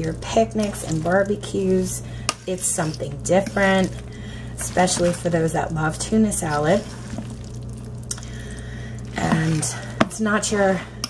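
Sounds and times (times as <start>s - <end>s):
pasta squishing: 0.0s - 10.6s
low electrical hum: 0.0s - 11.0s.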